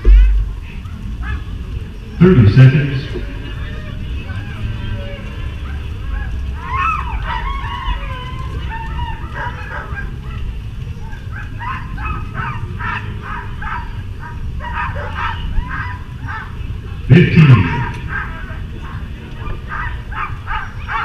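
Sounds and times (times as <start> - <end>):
low background noise: 0.0 - 21.0
sled dogs barking and yelping: 0.0 - 21.0.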